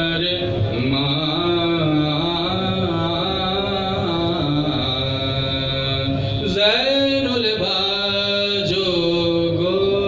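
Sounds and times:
man chanting unaccompanied: 0.0s - 10.0s.

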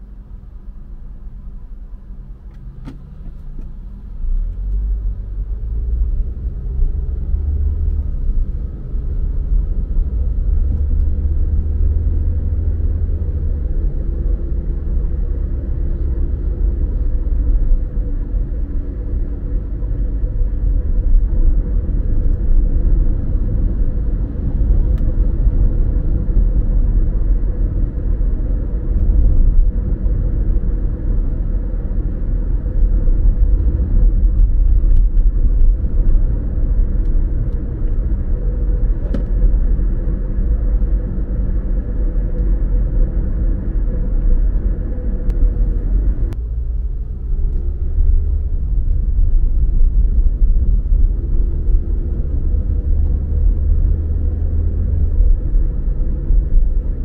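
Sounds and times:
engine and tyre rumble: 0.0s - 57.0s.

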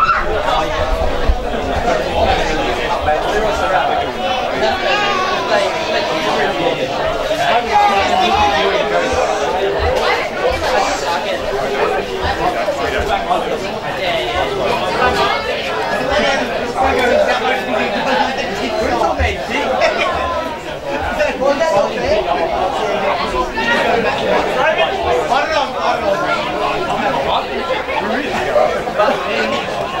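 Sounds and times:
people chattering: 0.0s - 30.0s.

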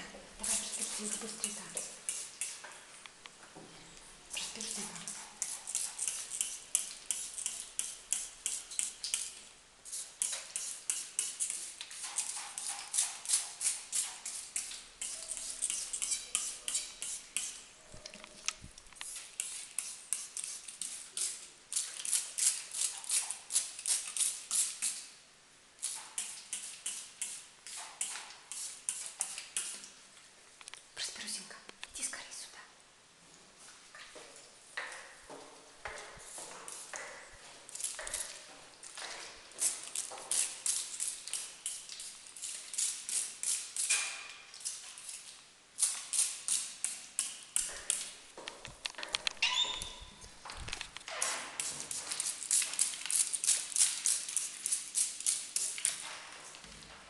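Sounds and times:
spray bottle squirting: 0.4s - 2.6s, 4.3s - 17.6s, 19.0s - 25.1s, 25.8s - 29.9s, 36.6s - 37.1s, 39.6s - 48.2s, 50.6s - 56.0s.

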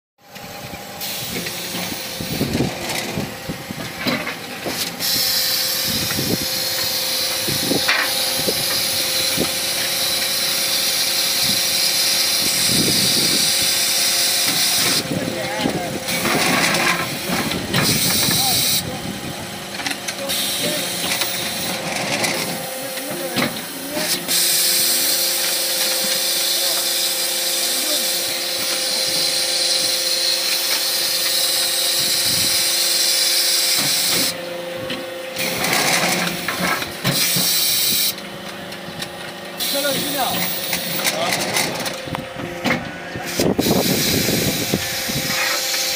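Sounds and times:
machine hum: 0.2s - 45.9s
knocks and clanks: 1.4s - 4.9s, 14.5s - 18.5s, 21.0s - 24.4s, 38.5s - 43.6s
loud high hiss: 4.8s - 15.1s, 22.3s - 34.4s, 35.4s - 38.2s, 43.2s - 45.9s.

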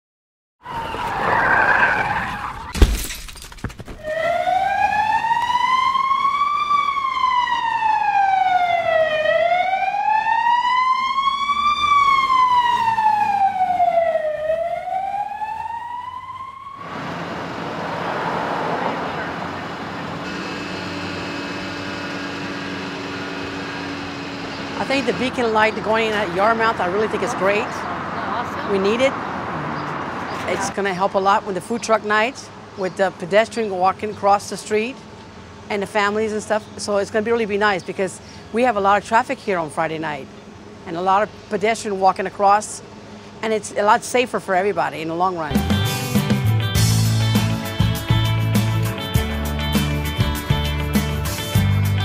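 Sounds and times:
emergency vehicle siren wailing: 0.6s - 2.8s, 4.0s - 30.6s
street traffic hum: 0.6s - 52.0s.

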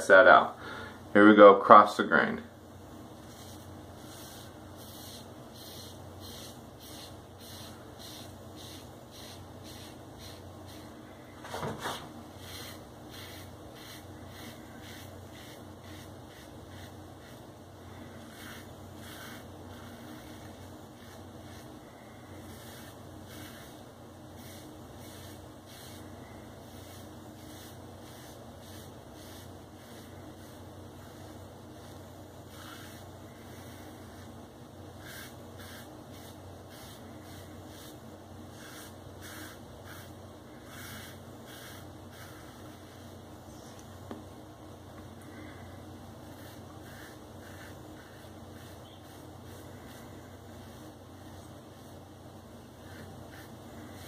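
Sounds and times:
steady low hum: 0.0s - 54.0s
razor scraping stubble: 3.2s - 10.9s, 11.6s - 23.8s, 24.4s - 34.3s, 35.0s - 43.8s, 46.2s - 52.0s, 52.8s - 54.0s.

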